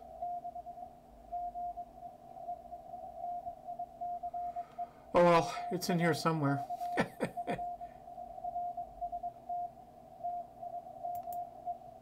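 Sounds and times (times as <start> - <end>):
faint radio band noise: 0.0 - 12.0.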